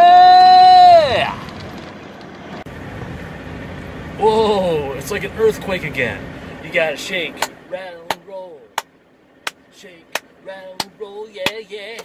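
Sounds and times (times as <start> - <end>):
road noise: 0.0 - 12.0
truck engine rumble: 0.0 - 12.0
cab shaking: 4.2 - 12.0.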